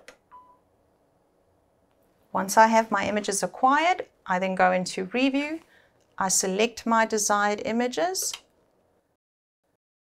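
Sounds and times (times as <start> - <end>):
short beep: 0.3 - 0.6.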